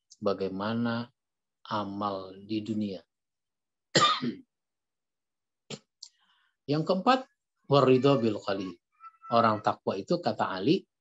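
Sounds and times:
man coughing: 0:03.9 - 0:04.4.

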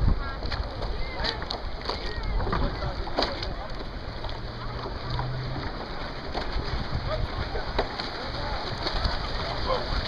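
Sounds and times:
seawater lapping and splashing: 0:00.0 - 0:10.0.

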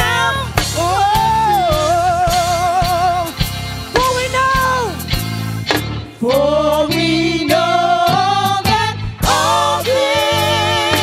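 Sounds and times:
live band accompaniment: 0:00.0 - 0:11.0
gospel choir singing: 0:06.1 - 0:11.0.

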